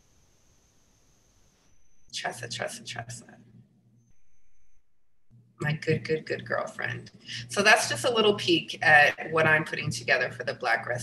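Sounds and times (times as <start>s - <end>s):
faint background hiss: 0.0s - 4.8s
thin steady high tone: 4.0s - 10.5s.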